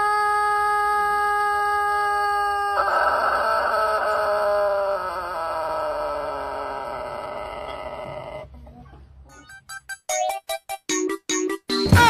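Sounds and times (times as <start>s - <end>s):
rooster crowing: 0.0s - 8.5s.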